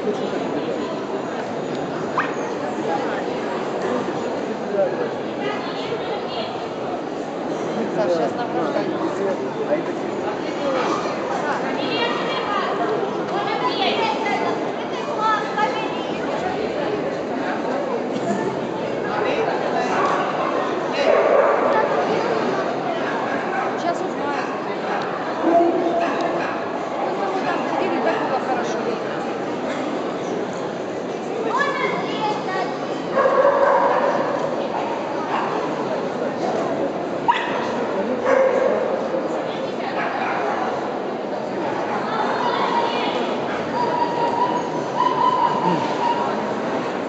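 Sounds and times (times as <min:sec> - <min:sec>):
crowd chatter in a hall: 0:00.0 - 0:47.0
dog barking: 0:21.0 - 0:21.8, 0:33.2 - 0:34.3, 0:37.3 - 0:38.9
dogs barking and yipping: 0:43.8 - 0:46.4.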